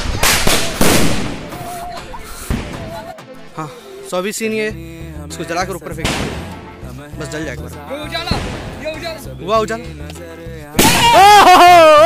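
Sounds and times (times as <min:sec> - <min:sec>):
firecrackers bursting: 0:00.0 - 0:02.9, 0:10.8 - 0:11.2.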